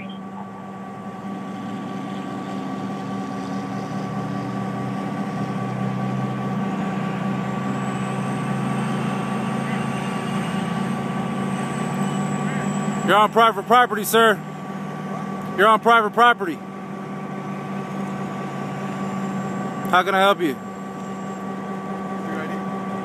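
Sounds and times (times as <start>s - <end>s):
vehicle engine hum: 0.0s - 23.0s.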